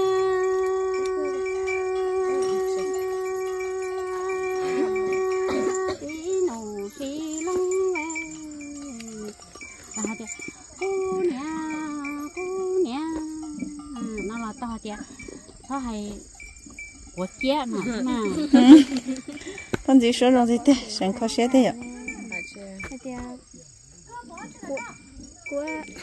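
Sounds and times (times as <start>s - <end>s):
woman singing: 0.0s - 15.1s
insect chirring: 0.0s - 26.0s.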